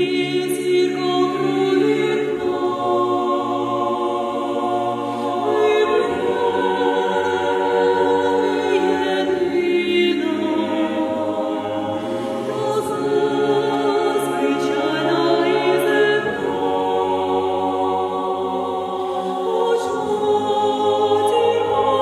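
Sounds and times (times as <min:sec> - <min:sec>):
mixed choir singing a cappella: 0:00.0 - 0:22.0.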